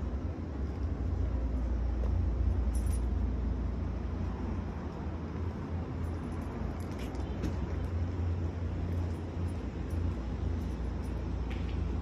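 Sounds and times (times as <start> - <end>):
street ambience rumble: 0.0 - 12.0.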